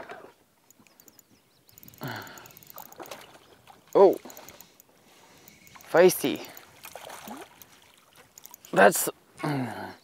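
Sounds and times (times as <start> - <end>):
fish splashing at water surface: 6.5 - 8.6.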